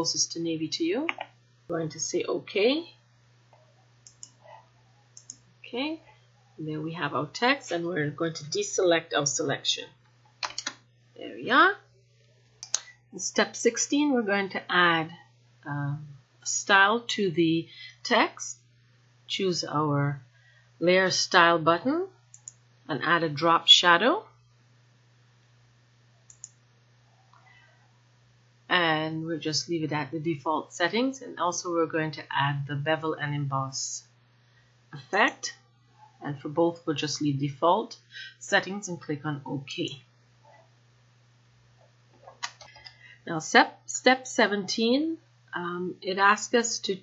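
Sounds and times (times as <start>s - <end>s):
faint steady hum: 0.0s - 47.0s
computer mouse clicks: 1.1s - 1.3s, 4.0s - 4.6s, 5.2s - 5.4s, 10.4s - 10.8s, 12.6s - 12.9s, 22.3s - 22.6s, 26.3s - 26.6s, 42.2s - 43.0s.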